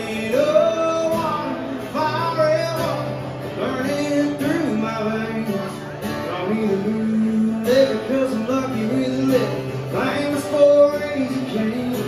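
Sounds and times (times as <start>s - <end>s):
acoustic guitars playing country: 0.0s - 12.0s
man singing: 0.0s - 12.0s.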